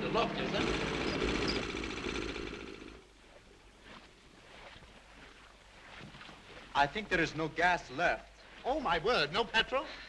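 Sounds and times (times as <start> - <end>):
small motorboat engine running: 0.0 - 3.5.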